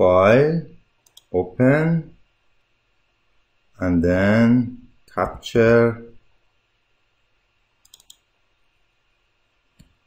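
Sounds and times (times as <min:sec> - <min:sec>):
computer mouse clicks: 0:01.0 - 0:01.3, 0:07.8 - 0:08.3.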